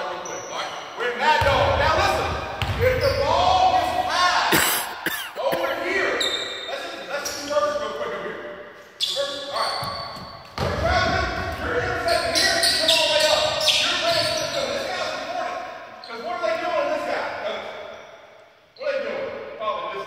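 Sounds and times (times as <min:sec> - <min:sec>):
voices calling out in a gym: 0:00.0 - 0:20.0
basketball bouncing on hardwood: 0:09.8 - 0:11.9.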